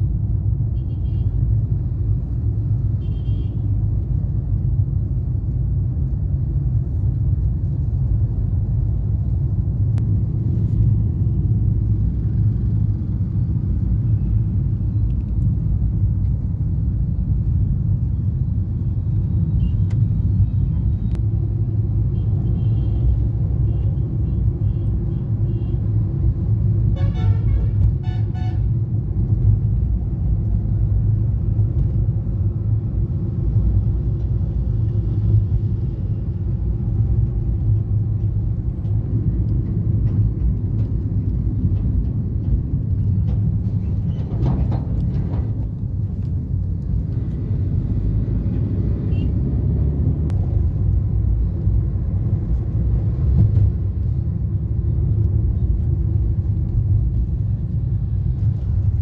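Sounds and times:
car engine and road rumble: 0.0 - 59.0
vehicle horn toots: 27.0 - 28.6.

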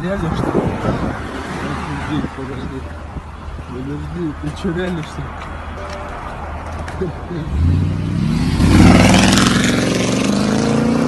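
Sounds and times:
car engine revving: 6.7 - 11.0.

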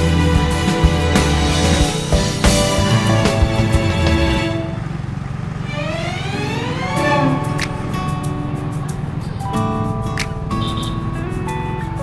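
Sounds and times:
small motorcycle engine accelerating: 0.0 - 9.3.

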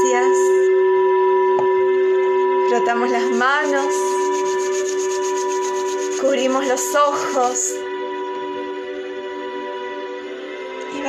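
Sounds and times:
held tone of background music: 0.0 - 11.0
palms rubbing together: 3.1 - 7.5.

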